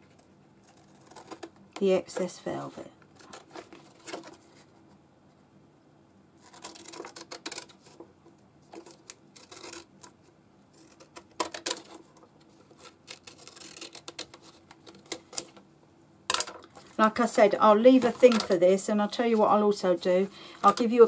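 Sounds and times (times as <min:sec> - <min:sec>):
paper and card rustling: 0:00.0 - 0:04.9, 0:08.7 - 0:15.6, 0:16.7 - 0:21.0.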